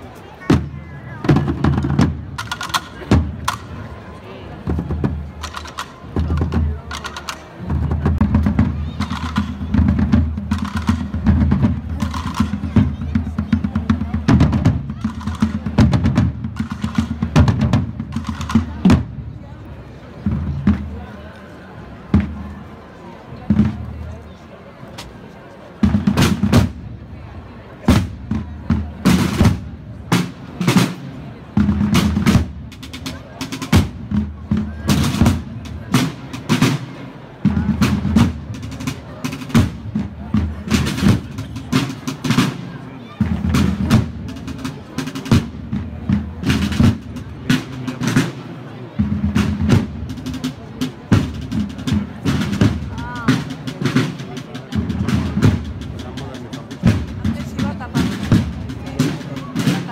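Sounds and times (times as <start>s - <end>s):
deep drum rolls: 0.5s - 3.8s, 4.6s - 19.4s, 27.8s - 48.4s, 49.0s - 59.9s
snare drum rolls: 0.5s - 3.8s, 4.6s - 19.2s, 25.8s - 26.9s, 27.8s - 59.9s.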